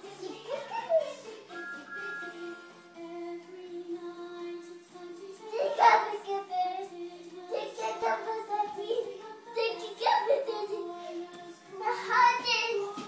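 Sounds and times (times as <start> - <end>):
music from television: 0.0 - 13.0.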